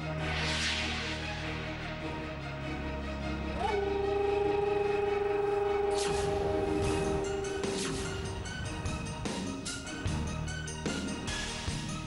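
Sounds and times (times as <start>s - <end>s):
rising synthesised tone: 3.6s - 9.2s.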